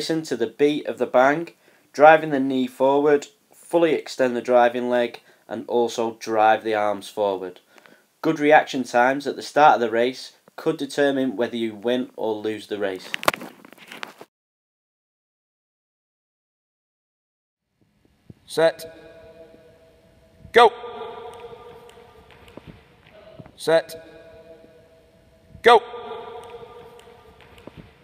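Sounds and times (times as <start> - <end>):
faint steady hum: 0.0 - 13.4, 17.7 - 28.0
footsteps running on hall floor: 21.3 - 23.6, 26.3 - 28.0.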